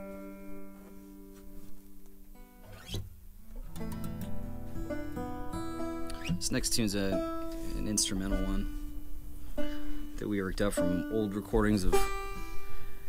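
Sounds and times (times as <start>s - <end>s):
acoustic guitar picking soft notes: 0.0s - 13.0s
guitar and banjo chord ringing: 2.4s - 13.0s.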